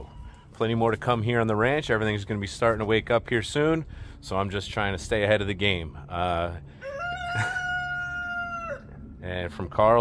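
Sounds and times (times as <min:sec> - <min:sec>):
long animal call: 0:06.8 - 0:09.0.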